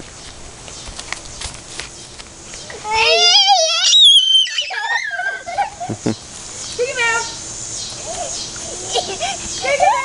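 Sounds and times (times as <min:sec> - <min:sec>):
person laughing: 0:04.9 - 0:06.3, 0:08.6 - 0:09.5.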